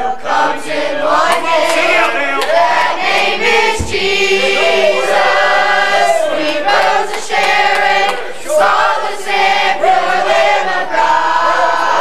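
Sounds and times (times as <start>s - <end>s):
youth choir singing gospel: 0.0s - 12.0s.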